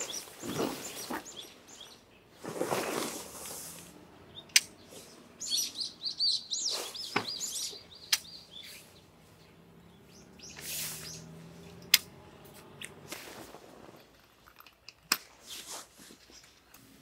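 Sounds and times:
tent canvas rustling: 0:00.0 - 0:04.0, 0:12.5 - 0:14.1
songbird chirping: 0:00.0 - 0:15.0
tent poles clicking: 0:02.4 - 0:04.8, 0:08.1 - 0:08.4, 0:10.5 - 0:16.6.

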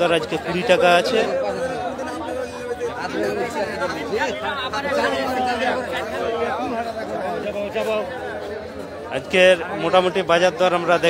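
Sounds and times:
overlapping market chatter: 0:00.0 - 0:11.0.

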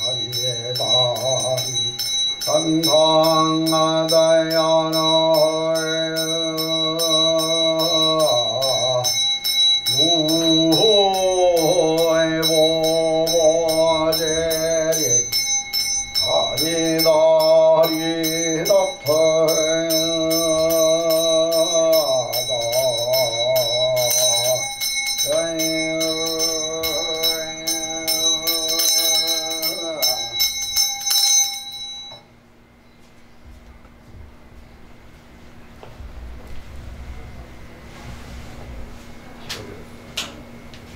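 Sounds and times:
monk chanting: 0:00.0 - 0:09.2, 0:09.9 - 0:15.4, 0:16.0 - 0:30.6
small bell ringing: 0:00.0 - 0:32.3.

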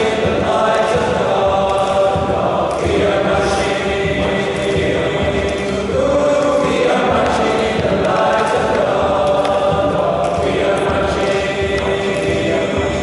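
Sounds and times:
choir singing in a church: 0:00.0 - 0:13.0.

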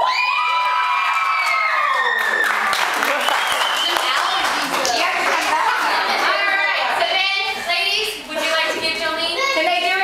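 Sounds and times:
girls cheering: 0:00.0 - 0:06.6
clapping: 0:00.4 - 0:06.3.

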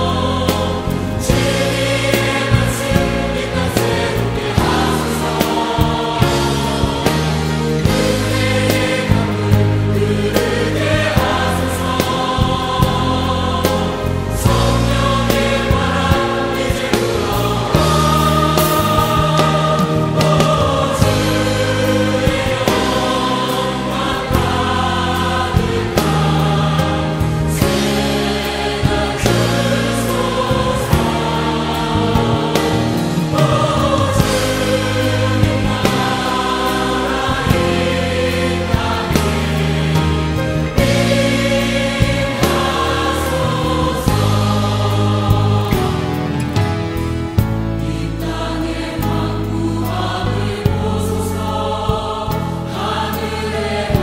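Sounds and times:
band accompaniment: 0:00.0 - 0:54.0
choir singing worship song: 0:00.0 - 0:54.0.

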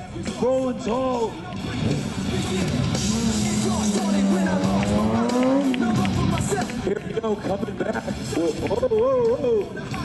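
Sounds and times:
rock music: 0:00.0 - 0:09.7
motorcycle engine revving: 0:01.6 - 0:06.6.

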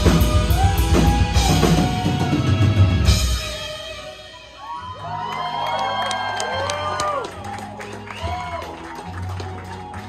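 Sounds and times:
crowd cheering and whooping: 0:00.0 - 0:02.7, 0:04.3 - 0:10.0
live metal music: 0:00.0 - 0:05.4.

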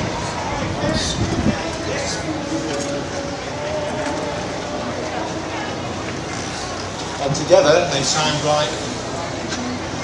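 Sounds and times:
steady noisy background: 0:00.0 - 0:10.0.

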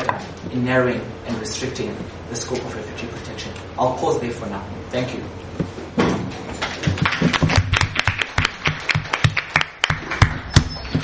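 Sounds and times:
audience clapping: 0:06.6 - 0:11.0.

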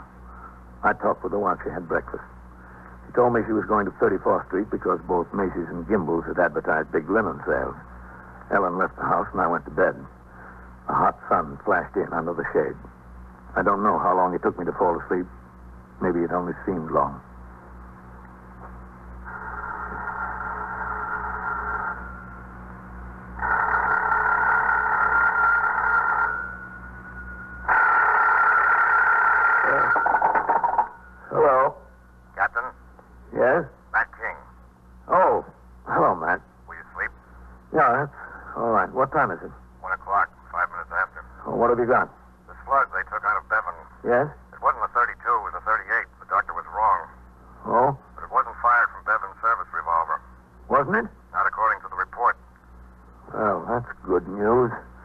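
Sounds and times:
steady low hum: 0:00.0 - 0:55.0
muffled voices speaking: 0:00.8 - 0:12.9, 0:13.5 - 0:15.3, 0:16.0 - 0:17.3, 0:29.7 - 0:30.0, 0:31.3 - 0:52.4, 0:53.2 - 0:54.9
telephone bell ringing: 0:19.3 - 0:22.2, 0:23.4 - 0:31.2.

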